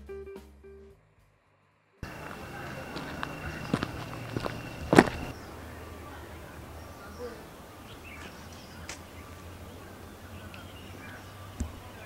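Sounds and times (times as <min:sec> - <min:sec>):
footsteps crunching on dirt trail: 0:02.0 - 0:05.4.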